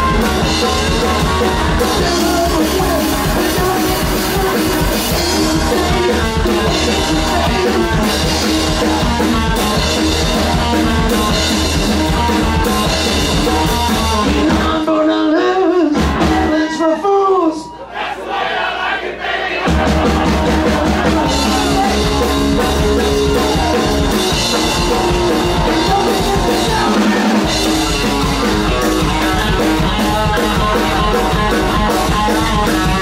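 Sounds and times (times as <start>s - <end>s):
person singing: 0.0s - 11.1s, 20.0s - 33.0s
rockabilly band playing: 0.0s - 33.0s.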